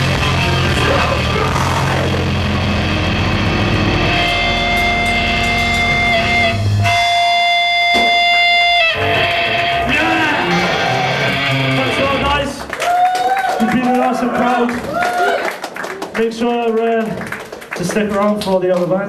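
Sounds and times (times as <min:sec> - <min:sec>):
distorted electric guitars: 0:00.0 - 0:12.6
held guitar tone ringing: 0:02.4 - 0:11.7.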